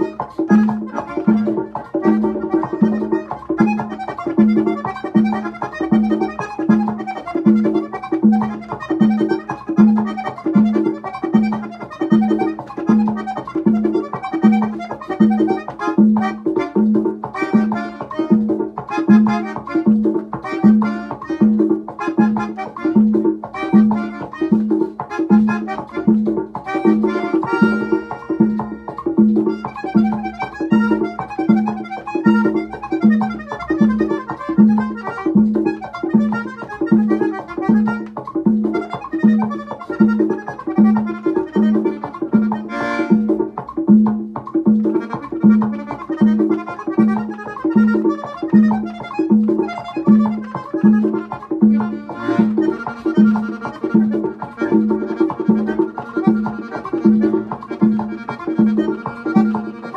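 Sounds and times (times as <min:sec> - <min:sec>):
accordion melody: 0:00.0 - 0:59.9.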